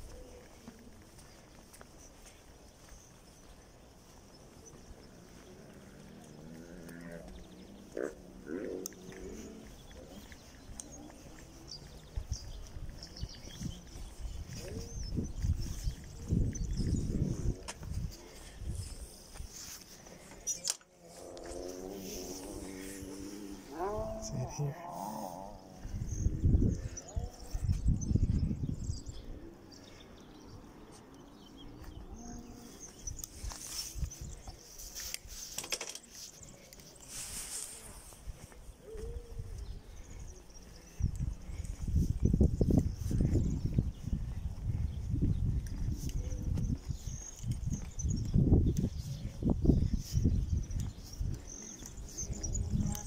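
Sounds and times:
wind gusts on microphone: 0:09.0 - 0:19.6, 0:21.1 - 0:30.7, 0:37.1 - 0:53.0
faint person's voice: 0:21.5 - 0:28.5, 0:51.4 - 0:53.0.

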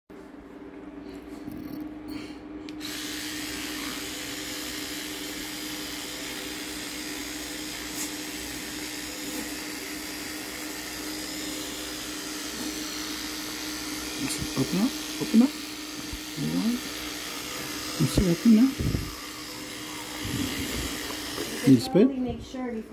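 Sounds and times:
electric toothbrush buzzing: 0:02.7 - 0:22.2.

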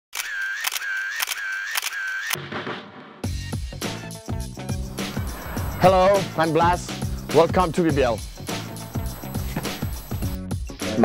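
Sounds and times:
sharp clicks: 0:00.2 - 0:02.4
short high whine: 0:04.7 - 0:07.4.

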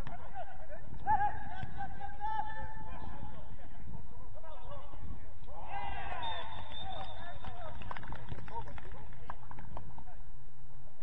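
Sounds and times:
footballers shouting: 0:00.1 - 0:03.2, 0:05.5 - 0:07.4.

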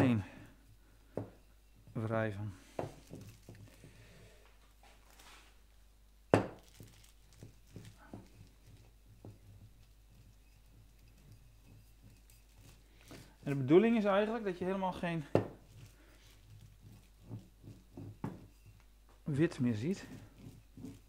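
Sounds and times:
plastic film crinkling: 0:03.0 - 0:03.8, 0:05.0 - 0:05.6, 0:06.5 - 0:08.9.

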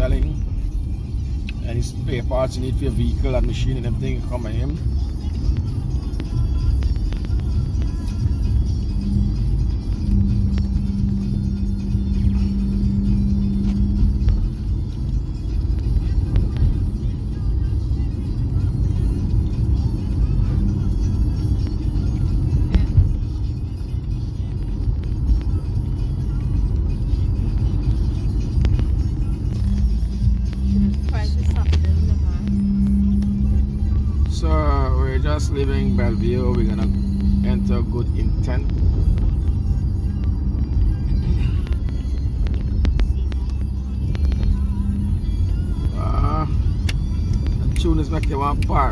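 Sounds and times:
car engine and road rumble: 0:00.0 - 0:48.9
steady hum: 0:26.8 - 0:48.9.

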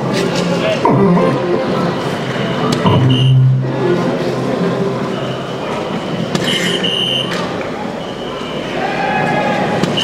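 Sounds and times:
murmur of crowd and machines: 0:00.0 - 0:10.0
electronic dartboard sound effects: 0:02.8 - 0:03.8
short electronic tone: 0:02.9 - 0:04.1.

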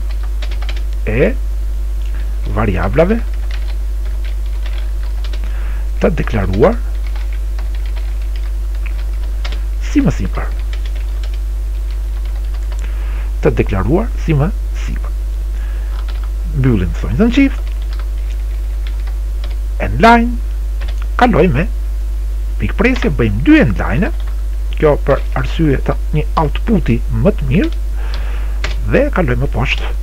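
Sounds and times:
low hum: 0:00.0 - 0:30.0
keyboard typing: 0:00.1 - 0:00.9, 0:03.2 - 0:05.5, 0:06.2 - 0:09.6, 0:10.5 - 0:12.9, 0:15.9 - 0:16.3, 0:17.5 - 0:19.6, 0:20.8 - 0:21.1, 0:24.1 - 0:24.4.

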